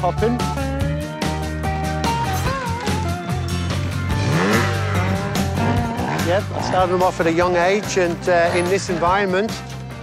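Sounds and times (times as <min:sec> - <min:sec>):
background music with steady beat: 0:00.0 - 0:10.0
motorcycle engine revving: 0:01.9 - 0:08.9.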